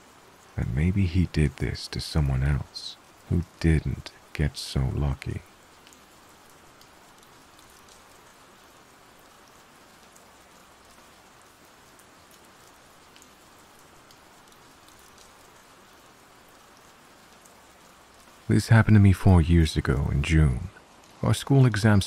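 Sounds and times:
faint steady rain: 0.0 - 22.0.

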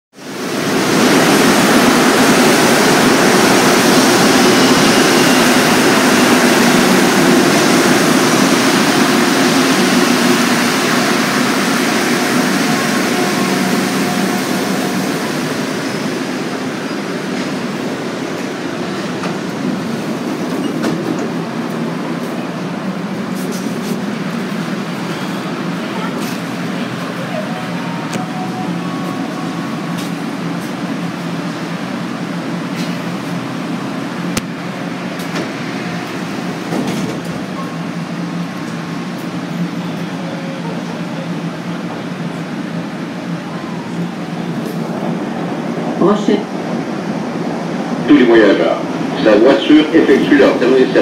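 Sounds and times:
subway train rumbling: 0.1 - 51.0.

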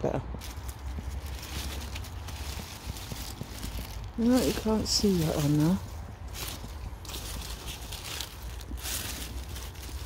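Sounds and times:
leaves and stems rustling: 0.3 - 10.0.

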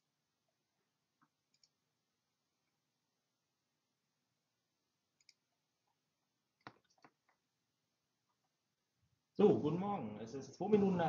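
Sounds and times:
faint clicks: 1.2 - 1.8, 5.2 - 6.0.

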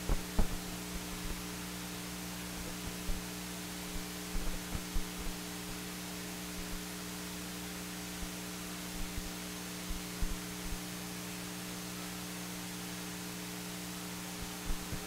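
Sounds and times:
electrical mains hum with hiss: 0.0 - 15.0.

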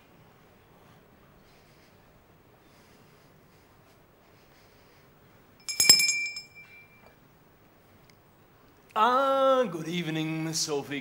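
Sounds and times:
sharp ringing clink: 5.6 - 7.2.

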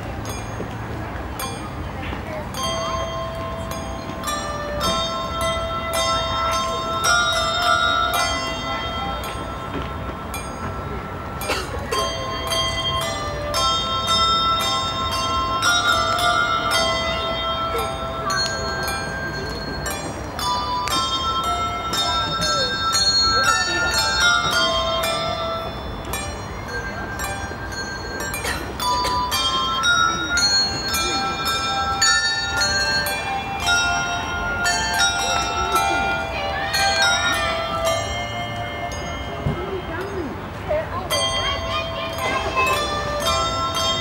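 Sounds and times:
handbell ensemble playing: 0.0 - 44.0.

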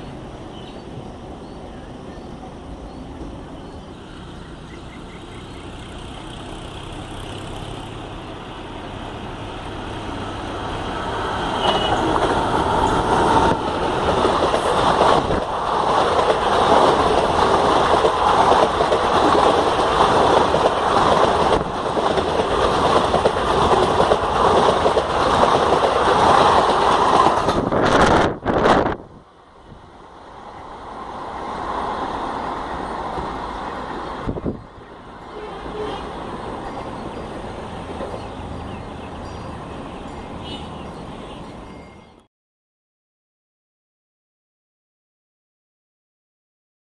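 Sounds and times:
train passing at speed: 0.0 - 42.2.

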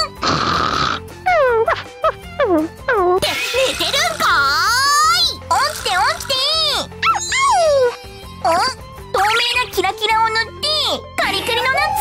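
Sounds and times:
light background music: 0.0 - 12.0
snore: 0.1 - 1.1
squeaky voice-like sounds: 5.5 - 8.8.

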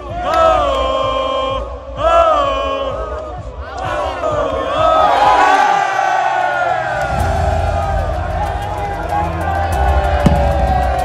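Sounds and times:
group cheering and shouting: 0.0 - 11.0.

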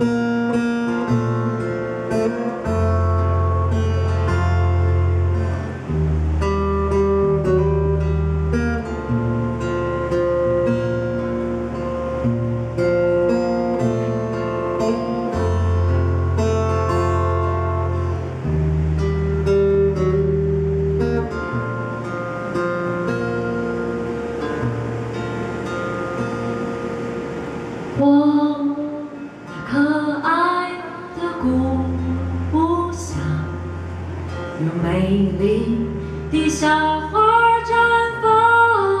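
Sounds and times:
amplified acoustic guitar: 0.0 - 39.0.

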